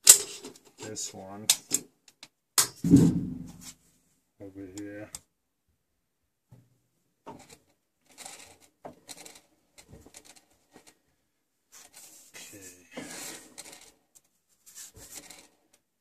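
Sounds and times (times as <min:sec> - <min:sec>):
hands rubbing on metal: 0:11.7 - 0:13.9, 0:14.5 - 0:15.6.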